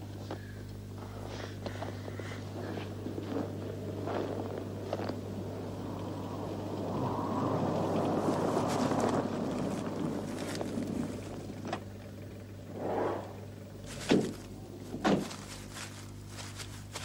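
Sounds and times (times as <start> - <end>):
steady low hum: 0.0 - 17.0
vehicle engine approaching: 1.7 - 17.0.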